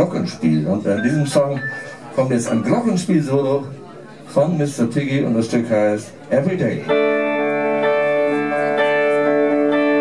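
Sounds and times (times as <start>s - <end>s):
electric guitar chords: 6.9s - 10.0s
keyboard chords: 6.9s - 10.0s.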